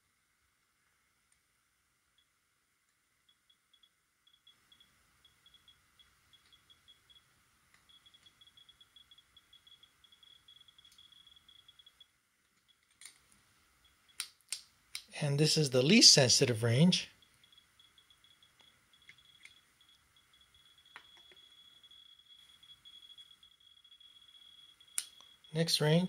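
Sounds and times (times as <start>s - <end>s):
radiation detector clicks: 2.9s - 15.1s, 16.7s - 26.0s.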